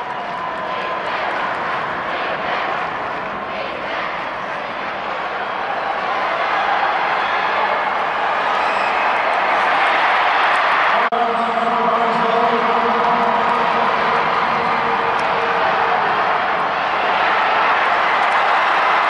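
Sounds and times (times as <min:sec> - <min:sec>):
stadium crowd roar: 0:00.0 - 0:19.0.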